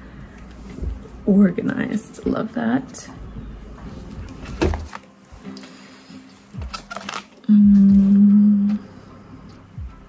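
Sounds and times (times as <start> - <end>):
lo-fi hip-hop music: 3.0 - 10.0
woman humming: 7.4 - 9.1.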